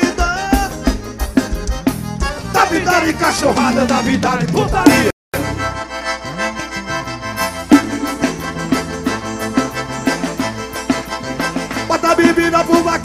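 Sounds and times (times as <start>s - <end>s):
band playing with accordion: 0.0s - 13.0s.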